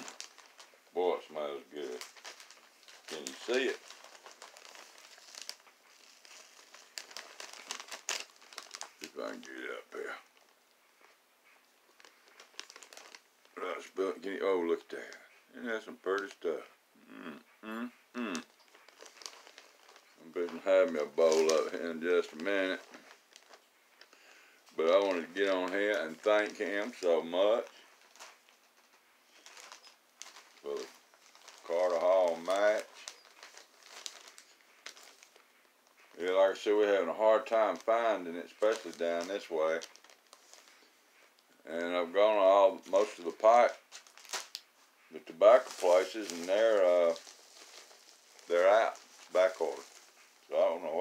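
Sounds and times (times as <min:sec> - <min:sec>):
plastic bag crinkling: 0:00.0 - 0:16.6, 0:18.3 - 0:51.0
faint rustles: 0:00.0 - 0:51.0.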